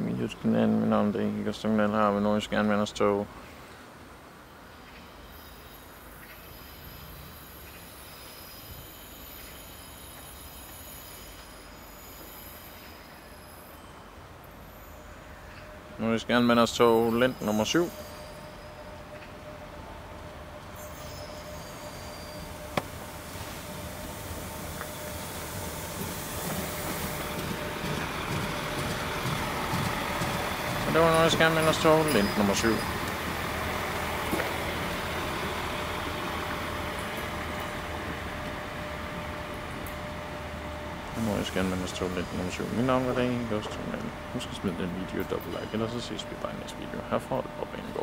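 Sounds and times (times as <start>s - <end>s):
train engine and wheels rumbling: 0.0s - 48.0s
wheel squeal: 5.1s - 14.0s, 16.4s - 19.4s, 20.7s - 37.8s.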